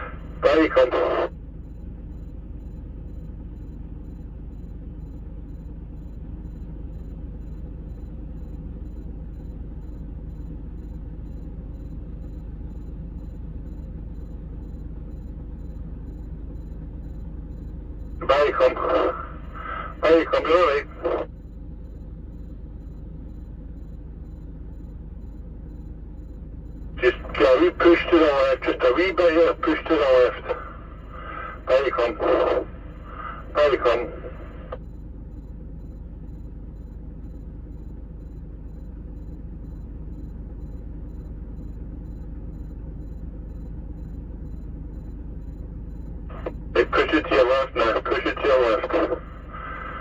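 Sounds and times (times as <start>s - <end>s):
person speaking: 0.0s - 1.3s, 18.2s - 21.3s, 27.0s - 34.4s, 46.3s - 49.9s
vehicle engine rumble: 0.0s - 50.0s.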